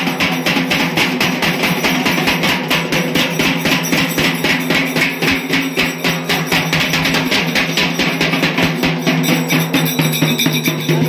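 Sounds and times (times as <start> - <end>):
rhythmic drum and percussion music: 0.0 - 11.0.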